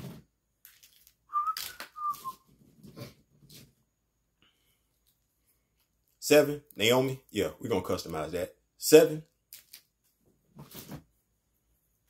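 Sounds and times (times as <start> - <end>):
rustling and handling noises: 0.0 - 4.0, 9.4 - 12.0
man whistling short notes: 1.3 - 2.4.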